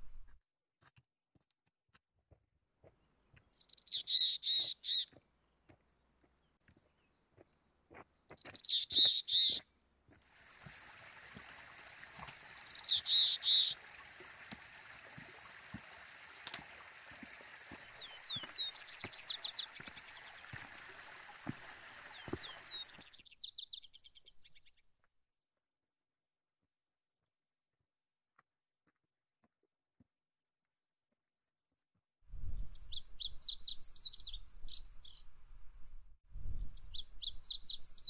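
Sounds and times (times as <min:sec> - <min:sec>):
downward-slurred bird calls: 0:03.6 - 0:05.1, 0:12.4 - 0:13.8
rapid trilled bird phrases: 0:12.4 - 0:13.8.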